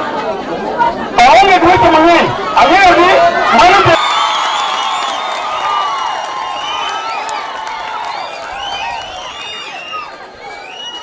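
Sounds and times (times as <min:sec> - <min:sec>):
crowd cheering and whooping: 0:02.4 - 0:11.0
people clapping: 0:03.9 - 0:11.0.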